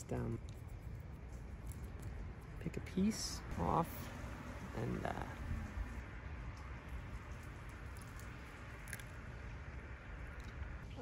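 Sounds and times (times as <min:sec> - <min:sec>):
crunchy bark chewing clicks: 0:06.5 - 0:09.2.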